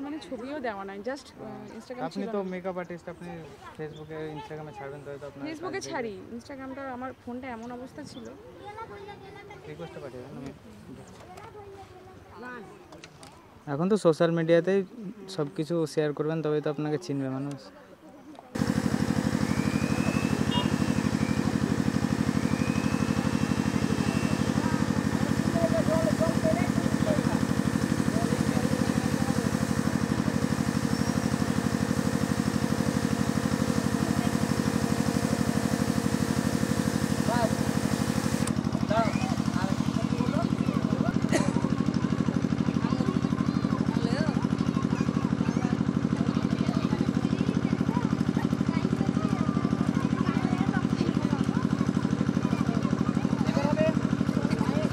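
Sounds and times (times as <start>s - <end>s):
small engine droning: 18.5s - 54.9s.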